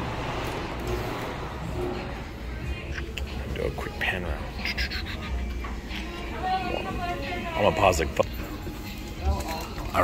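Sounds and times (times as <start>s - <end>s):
murmur of distant voices: 0.6s - 10.0s.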